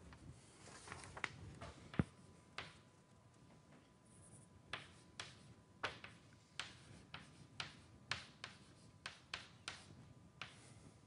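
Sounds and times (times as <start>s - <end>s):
chalk tapping on blackboard: 1.9s - 2.8s, 4.3s - 10.8s
chalk scraping: 6.5s - 10.7s.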